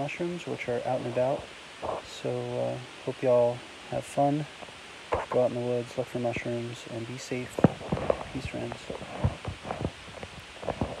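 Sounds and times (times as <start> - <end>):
microphone handling thumps: 1.8 - 2.1, 4.6 - 5.5, 7.5 - 11.0.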